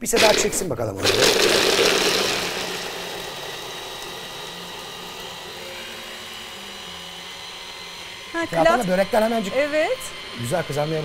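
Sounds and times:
stick blender grinding nuts: 0:00.0 - 0:11.0.

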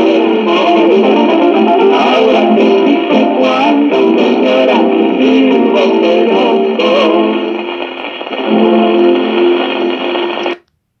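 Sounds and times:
folk song with guitars: 0:00.0 - 0:10.6
record surface hiss: 0:00.0 - 0:11.0.

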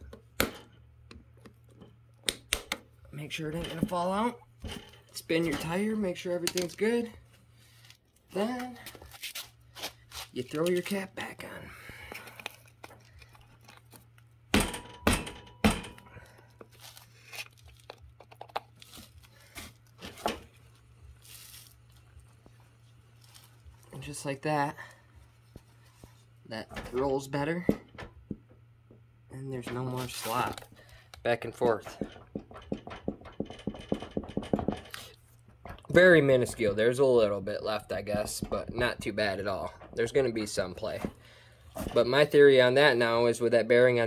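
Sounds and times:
steady low hum: 0:11.0 - 0:43.6.

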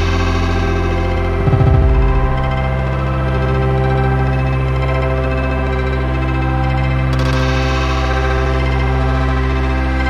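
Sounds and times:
low bass note: 0:01.1 - 0:04.3
held synthesizer chords: 0:01.1 - 0:04.4.

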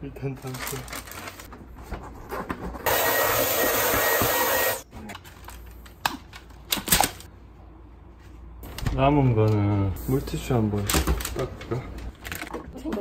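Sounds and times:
vacuum cleaner hiss and motor whine: 0:02.9 - 0:04.8.

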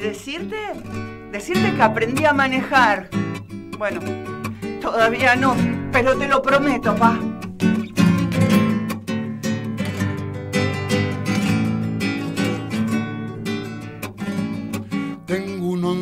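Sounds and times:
acoustic guitar strumming and picking: 0:00.0 - 0:16.0.

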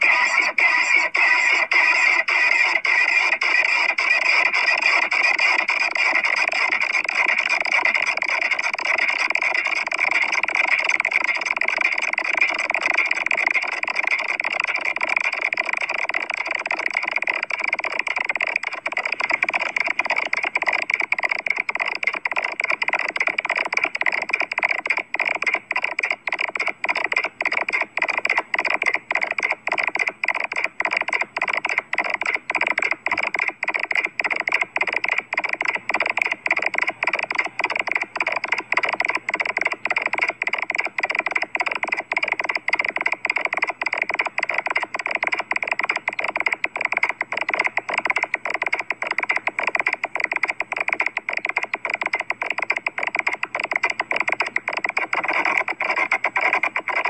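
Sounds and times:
distorted screechy buzzing audio: 0:00.0 - 0:57.0.

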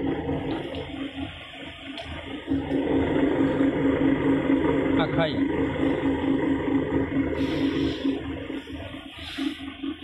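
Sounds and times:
pulsing motor hum: 0:00.0 - 0:10.0.

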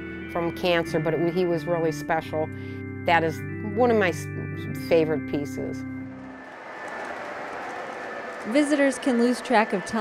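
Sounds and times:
background music: 0:00.0 - 0:06.6.

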